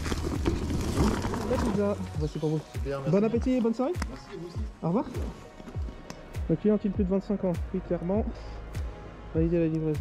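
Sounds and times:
insulated bag rustling and scraping: 0.0s - 2.7s.

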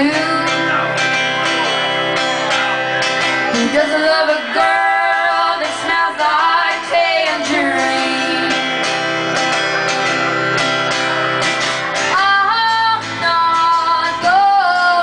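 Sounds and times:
woman singing: 0.0s - 1.0s, 3.5s - 8.9s, 12.1s - 15.0s
strummed acoustic guitar: 0.0s - 15.0s.

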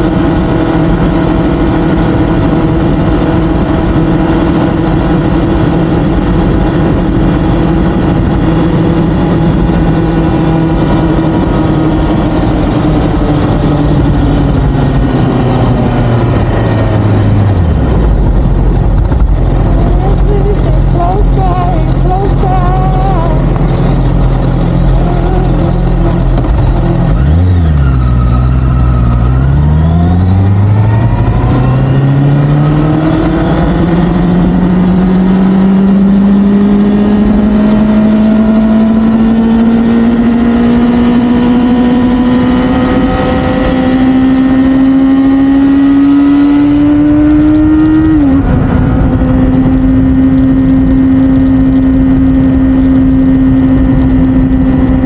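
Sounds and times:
motorcycle engine accelerating: 0.0s - 55.0s.

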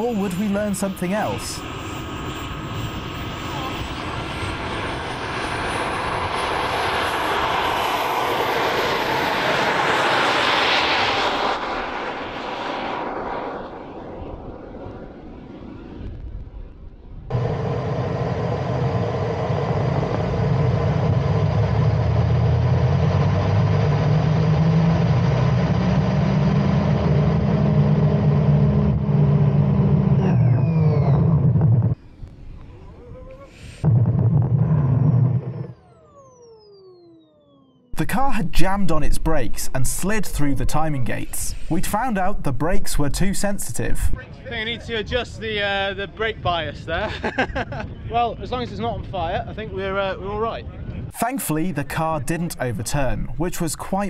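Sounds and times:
jet turbine whine: 0.0s - 54.0s
low turbine rumble: 0.0s - 54.0s.

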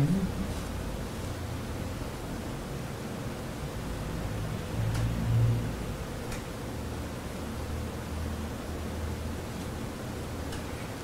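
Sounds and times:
room hiss and low hum: 0.0s - 11.0s.

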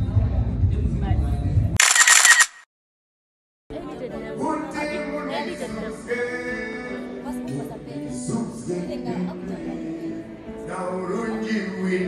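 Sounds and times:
music: 0.0s - 1.8s, 3.7s - 12.0s
camera shutter clicks: 1.8s - 2.6s.

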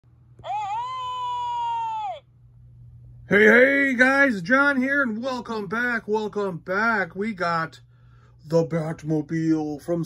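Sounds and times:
high-pitched vocal cry: 0.4s - 2.3s.

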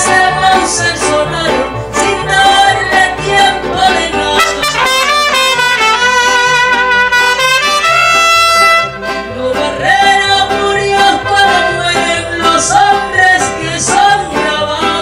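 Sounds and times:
woman singing: 0.0s - 6.6s, 9.2s - 15.0s
accordion: 0.0s - 15.0s
trumpets playing: 4.4s - 9.1s.

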